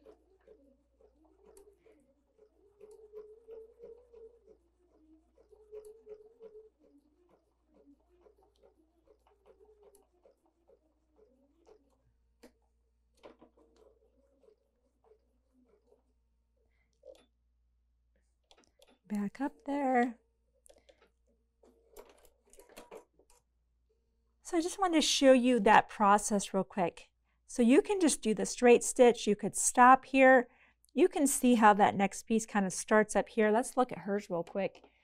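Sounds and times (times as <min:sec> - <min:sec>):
sewing machine humming: 0:00.0 - 0:12.0.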